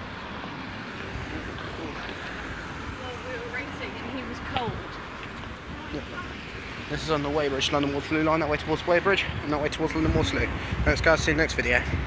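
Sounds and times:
faint voices of passers-by: 0:00.0 - 0:12.0
road traffic: 0:00.0 - 0:12.0.

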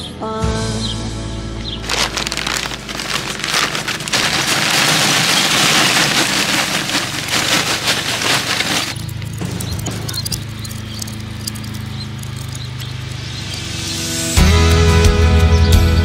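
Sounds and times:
charcoal lumps clattering: 0:01.7 - 0:13.7.

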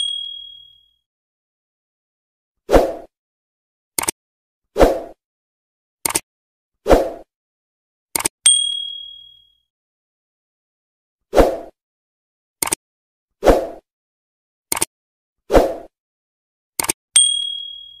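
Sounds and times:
bright bell ding: 0:00.0 - 0:00.9, 0:08.5 - 0:09.6, 0:17.2 - 0:18.0
double click: 0:12.6 - 0:12.8, 0:16.8 - 0:17.0.

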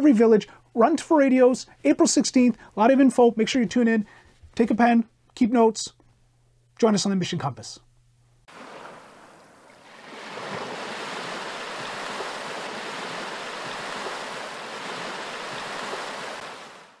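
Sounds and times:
breaking ocean waves: 0:08.5 - 0:17.0.

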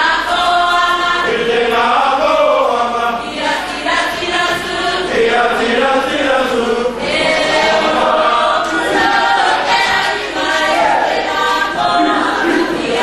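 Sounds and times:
group singing in chorus: 0:00.0 - 0:13.0.

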